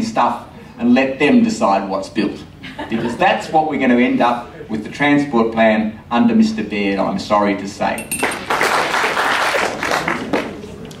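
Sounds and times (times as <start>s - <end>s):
audience applauding: 8.2s - 11.0s.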